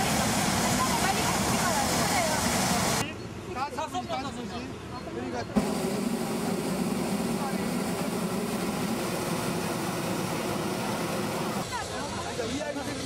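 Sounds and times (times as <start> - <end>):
propane burner roaring: 0.0 - 3.0, 5.6 - 12.4.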